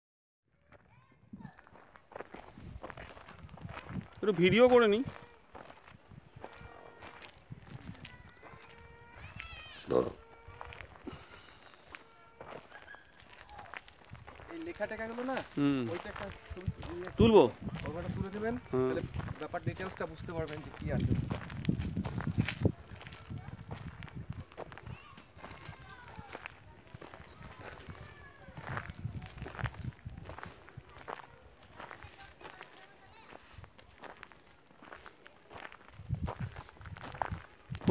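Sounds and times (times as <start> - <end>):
footsteps on gravel: 0.7 - 37.9
bird chirps: 12.6 - 13.9, 27.2 - 28.9.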